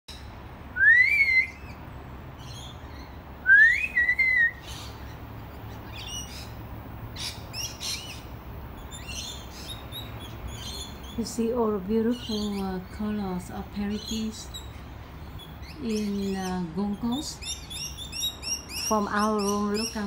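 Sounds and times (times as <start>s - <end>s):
bird whistling: 0.8s - 1.8s, 3.4s - 4.9s
bird chirps and twitters: 1.1s - 20.0s.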